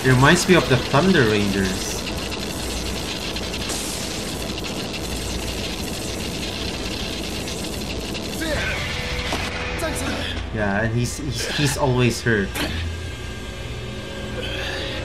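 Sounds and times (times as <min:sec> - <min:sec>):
electric crackle effect: 0:00.0 - 0:10.6
music: 0:08.4 - 0:11.9, 0:12.6 - 0:15.0.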